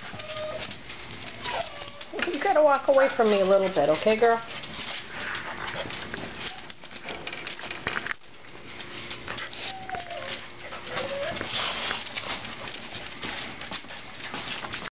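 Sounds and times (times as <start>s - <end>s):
dog whimpers: 0.0s - 2.3s, 9.4s - 11.9s
footsteps and shuffling: 0.0s - 14.9s
dog claws clicking on tile: 4.0s - 14.9s.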